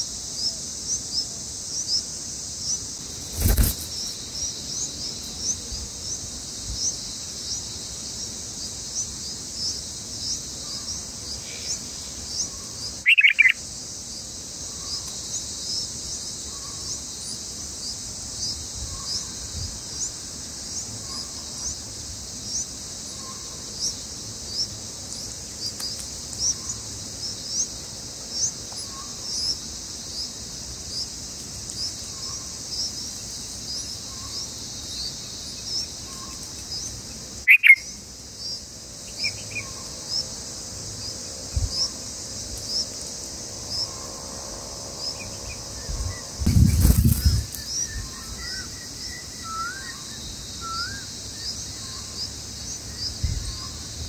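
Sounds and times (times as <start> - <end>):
high insect drone: 0.0 - 54.0
loud bird call: 13.0 - 13.6, 37.4 - 38.0.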